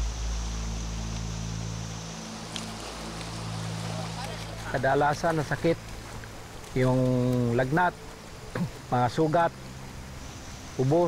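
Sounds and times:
deep low rumble: 0:00.0 - 0:07.1
rushing river water: 0:00.0 - 0:11.0
steady low drone: 0:00.0 - 0:11.0.

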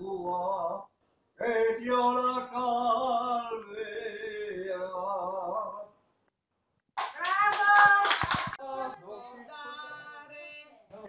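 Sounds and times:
audience clapping: 0:07.0 - 0:08.6.

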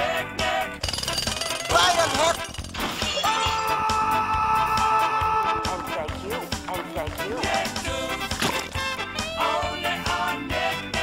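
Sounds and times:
fast even rattle: 0:00.8 - 0:03.2
cartoon music: 0:01.0 - 0:10.3.

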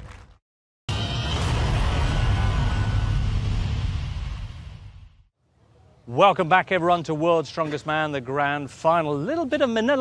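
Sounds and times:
cinematic music: 0:00.9 - 0:05.2.

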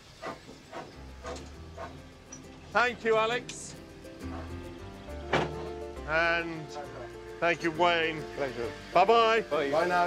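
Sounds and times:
locomotive strokes: 0:00.0 - 0:03.0
steam locomotive hissing: 0:06.2 - 0:10.0.

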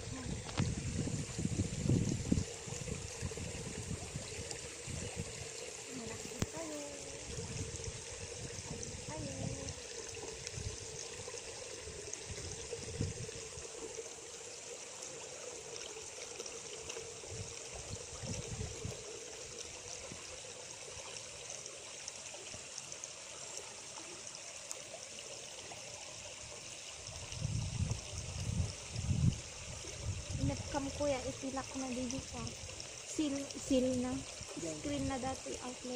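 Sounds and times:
water trickling into pond: 0:00.0 - 0:35.9.

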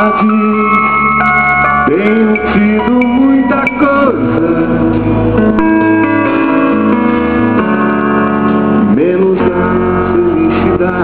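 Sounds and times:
live band music: 0:00.0 - 0:08.9.

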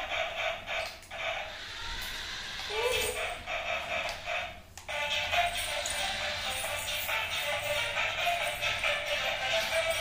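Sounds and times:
toy car electric motor whirring: 0:00.6 - 0:10.0.

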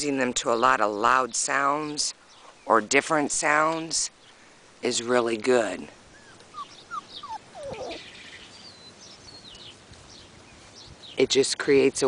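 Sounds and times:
short falling squeaky calls: 0:06.1 - 0:08.5
high wavering bird chirps: 0:06.1 - 0:11.2.

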